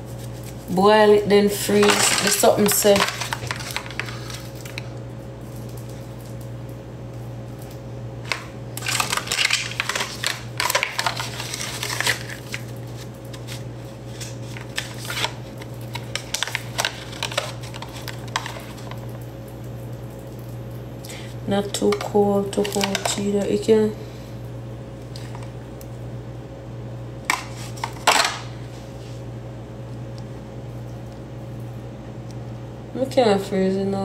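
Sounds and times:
low steady hum: 0:00.0 - 0:34.0
plastic packaging crinkling and clicking: 0:01.7 - 0:06.8, 0:07.6 - 0:20.6, 0:21.7 - 0:23.5, 0:27.2 - 0:28.5.

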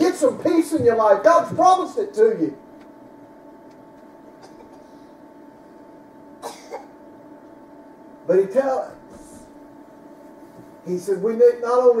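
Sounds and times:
low room hum: 0:00.0 - 0:12.0
person coughing: 0:04.4 - 0:05.0, 0:06.4 - 0:07.0.

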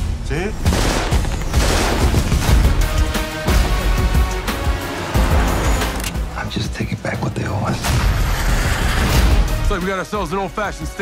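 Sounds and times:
rapid automatic gunfire: 0:00.6 - 0:02.8.

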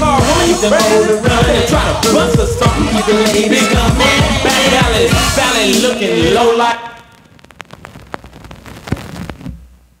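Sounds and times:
vinyl crackles and pops: 0:04.0 - 0:10.0.

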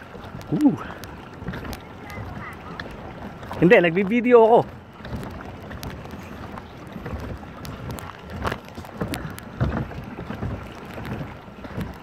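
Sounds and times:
lapping water: 0:00.0 - 0:12.0.

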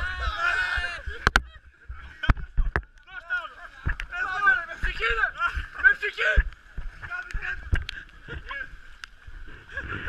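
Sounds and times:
voices: 0:00.0 - 0:08.8
paddles splashing in water: 0:00.0 - 0:10.0
people laughing: 0:00.8 - 0:02.8.

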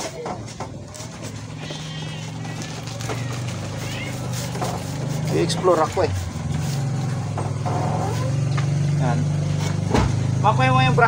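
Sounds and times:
engine idling: 0:00.5 - 0:11.0.

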